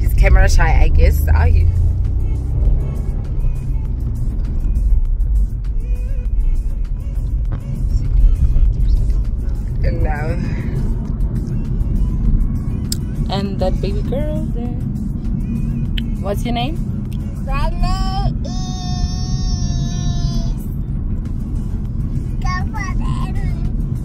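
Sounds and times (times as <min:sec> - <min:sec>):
car engine and road noise: 0:00.0 - 0:24.0.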